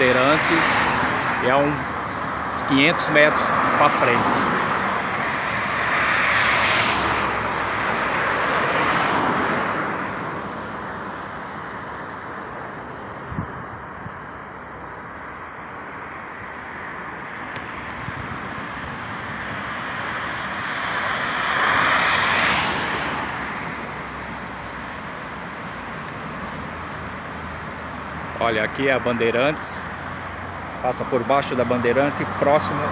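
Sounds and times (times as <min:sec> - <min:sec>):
low road rumble: 0:00.0 - 0:32.9
vehicles whooshing past: 0:00.0 - 0:32.9.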